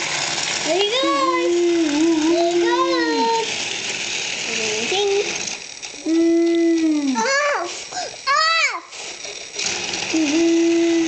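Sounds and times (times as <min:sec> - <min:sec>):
toy train motor whirring: 0:00.0 - 0:11.0.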